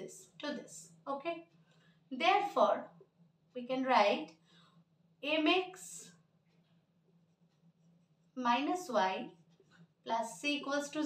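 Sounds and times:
low steady hum: 0:00.0 - 0:11.0
marker writing on whiteboard: 0:05.3 - 0:11.0.

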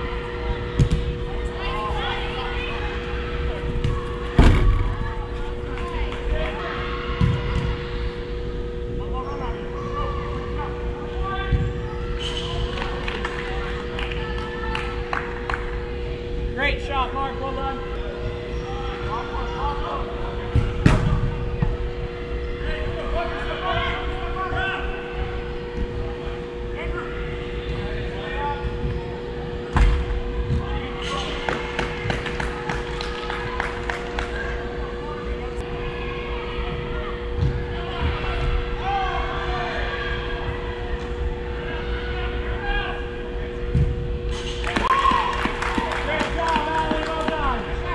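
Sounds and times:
distant players' voices: 0:00.0 - 0:47.9
steady electrical hum: 0:00.0 - 0:47.9.

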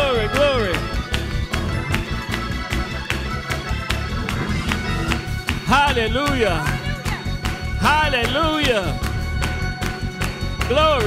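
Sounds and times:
drum kit fast beat: 0:00.0 - 0:09.6
heavy bass: 0:00.0 - 0:11.0
keyboard chords: 0:00.0 - 0:11.0.

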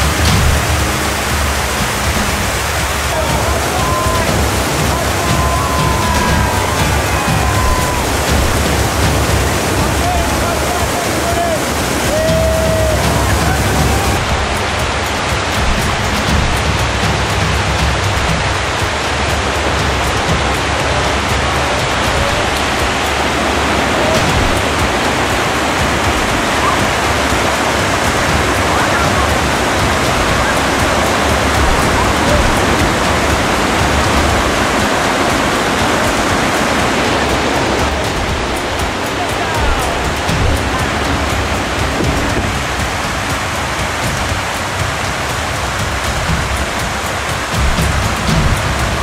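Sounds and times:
river rapids rushing: 0:00.0 - 0:49.0.

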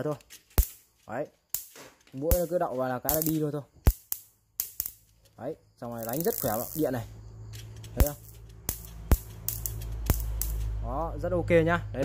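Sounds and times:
sharp electric snaps: 0:00.0 - 0:11.2.

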